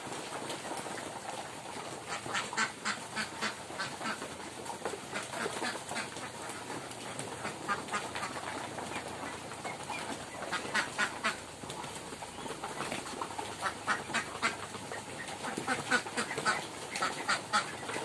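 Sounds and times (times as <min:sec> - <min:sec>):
ducks quacking: 0:00.1 - 0:18.0.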